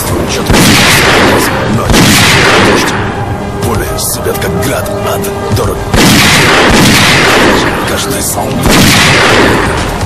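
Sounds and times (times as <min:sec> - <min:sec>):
gunfire with heavy booms: 0:00.3 - 0:03.2, 0:05.9 - 0:10.0
sharp gunshot cracks: 0:00.5 - 0:03.0, 0:06.0 - 0:07.7, 0:08.6 - 0:10.0.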